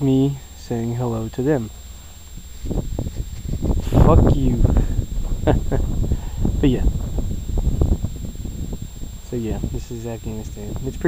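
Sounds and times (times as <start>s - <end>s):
wind buffeting microphone: 1.7s - 11.0s.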